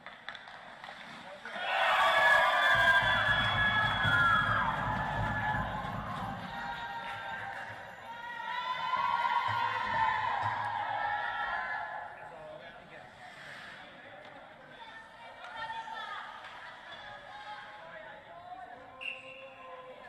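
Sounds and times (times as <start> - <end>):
crowd shouting and cheering: 1.5 - 12.3
music: 2.4 - 8.2.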